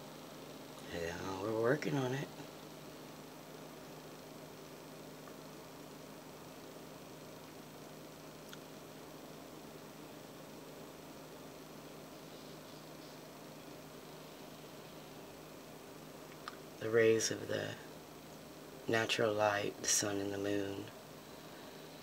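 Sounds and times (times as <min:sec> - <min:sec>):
electric fan running: 0:00.0 - 0:22.0.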